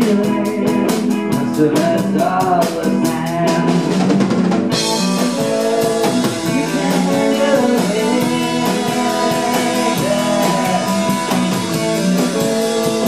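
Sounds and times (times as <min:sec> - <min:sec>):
bass guitar: 0:00.0 - 0:13.0
electric guitars: 0:00.0 - 0:13.0.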